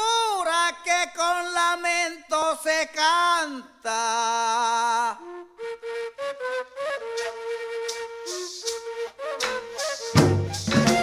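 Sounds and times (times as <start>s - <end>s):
cane flute melody: 5.2s - 11.0s
maraca shaking: 7.2s - 11.0s.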